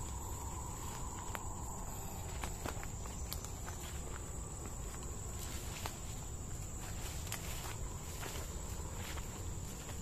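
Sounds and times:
twigs snapping: 0:00.0 - 0:06.1
footsteps crunching through leaves: 0:00.0 - 0:10.0
high-pitched insect drone: 0:00.0 - 0:10.0.

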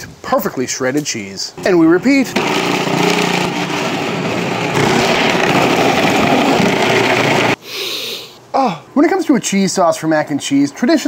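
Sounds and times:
food processor grating cheese: 0:01.6 - 0:07.6.

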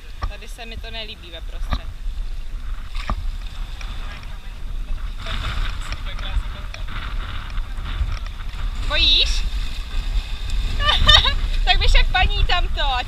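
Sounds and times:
wind rumbling on microphone: 0:00.0 - 0:13.0.

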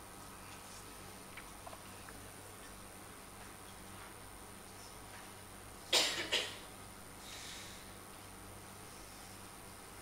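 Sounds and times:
faint room hum: 0:00.0 - 0:10.0
person coughing: 0:05.9 - 0:06.6.

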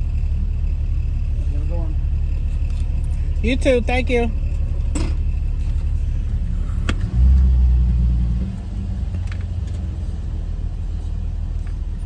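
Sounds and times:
car engine rumble from inside: 0:00.0 - 0:12.0.

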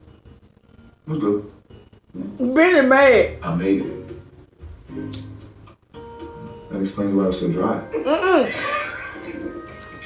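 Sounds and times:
soft music from television: 0:00.0 - 0:10.0
dialogue from television: 0:00.2 - 0:10.0.

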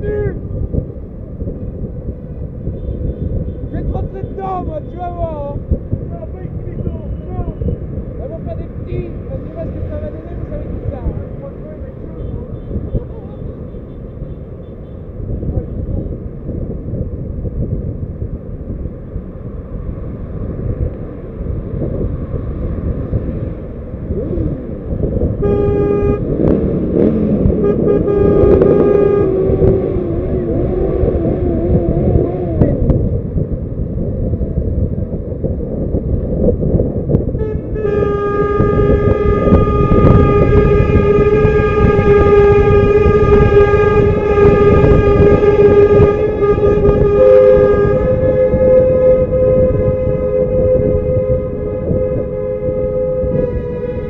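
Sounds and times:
moving car rumble: 0:00.0 - 0:54.0
wind on microphone: 0:00.0 - 0:54.0
vehicle horn blasts: 0:25.2 - 0:26.4, 0:27.0 - 0:30.2, 0:37.3 - 0:54.0.

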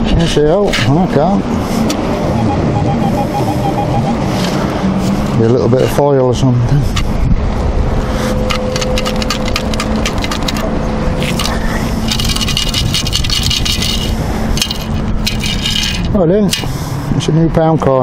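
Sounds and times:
steady low hum: 0:00.0 - 0:17.3
metal scoop scraping sand: 0:11.2 - 0:16.8
sand rattling through metal basket: 0:11.2 - 0:16.8.

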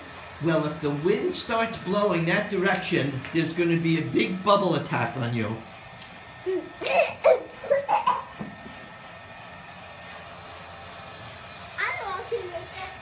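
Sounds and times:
boy laughing: 0:06.4 - 0:08.6
boy's voice: 0:11.8 - 0:13.0.

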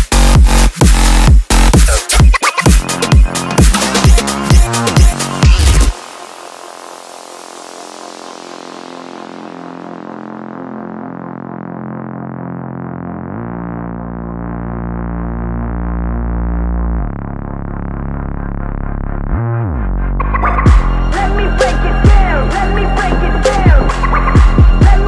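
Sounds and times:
deep bass: 0:00.0 - 0:06.0, 0:09.4 - 0:25.0
sustained synthesizer chords: 0:00.1 - 0:25.0.

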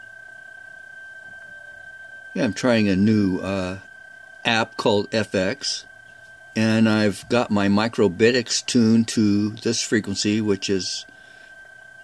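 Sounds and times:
faint radio band noise: 0:00.0 - 0:12.0
steady high radio tone: 0:00.0 - 0:12.0.

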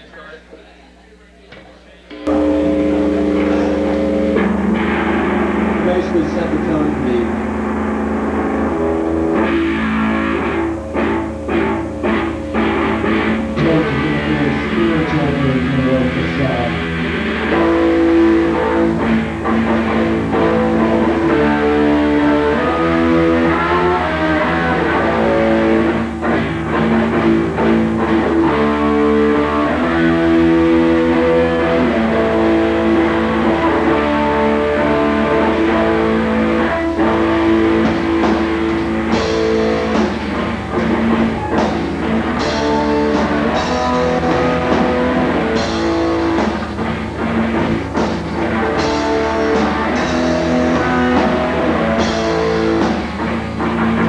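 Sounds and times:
bass: 0:00.0 - 0:54.0
drums: 0:00.0 - 0:54.0
electric guitar chords: 0:02.1 - 0:54.0.

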